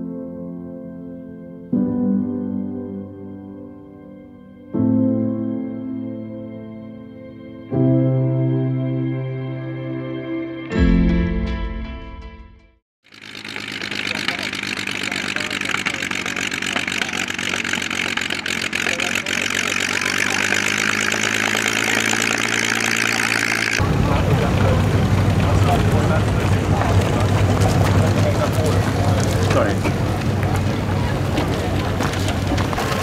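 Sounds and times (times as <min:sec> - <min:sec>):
background music: 0:00.0 - 0:12.8
propeller plane engine running: 0:13.0 - 0:33.0.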